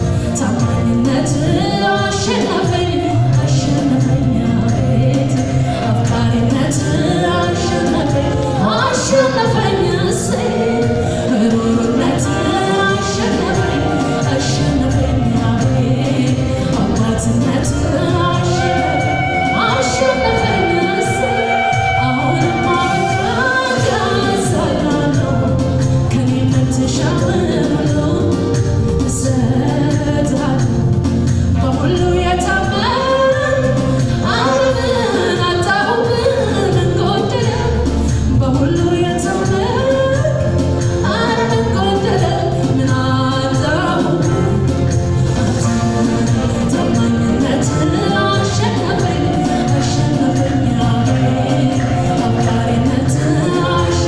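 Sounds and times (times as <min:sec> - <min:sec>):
voices singing together: 0:00.0 - 0:30.7, 0:40.4 - 0:54.0
instrumental backing: 0:00.0 - 0:54.0.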